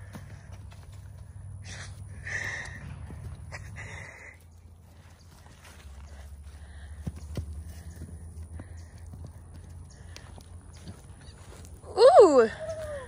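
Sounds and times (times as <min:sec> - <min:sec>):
steady low rumble: 0:00.0 - 0:11.9
hoofbeats on sandy ground: 0:00.0 - 0:13.0.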